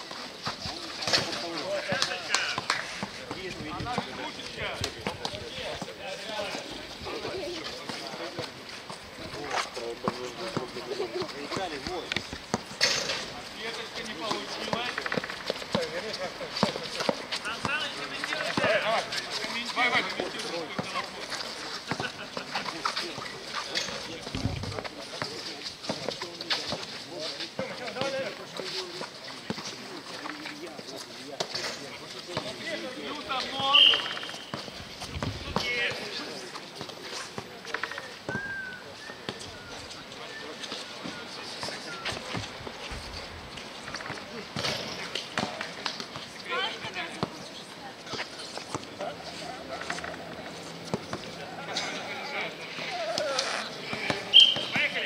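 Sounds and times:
players calling: 0:32.2 - 0:42.8, 0:48.8 - 0:55.0
feet on the court: 0:52.8 - 0:55.0.

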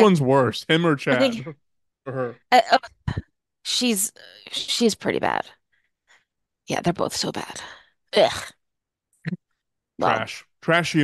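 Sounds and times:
person groaning in disgust: 0:01.2 - 0:01.5.

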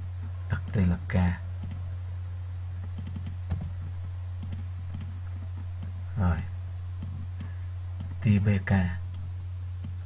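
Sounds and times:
steady low hum: 0:00.0 - 0:10.0
computer clicks: 0:01.6 - 0:01.8, 0:02.8 - 0:03.7, 0:04.4 - 0:05.1.

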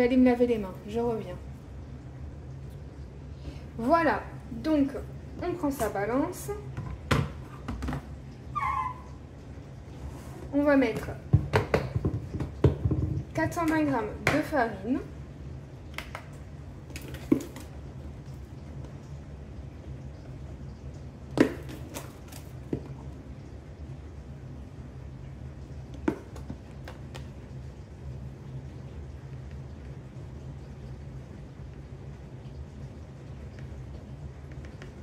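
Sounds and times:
plastic box knocks and clicks: 0:11.3 - 0:14.4.

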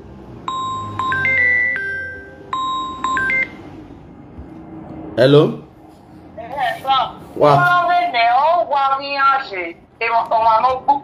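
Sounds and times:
electronic phone ringtone: 0:00.5 - 0:03.7.

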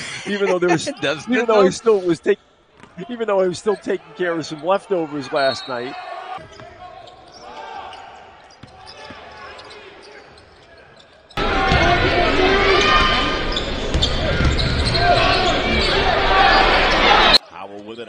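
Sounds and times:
arena crowd noise: 0:00.0 - 0:18.0
basketball bouncing: 0:13.5 - 0:15.0.

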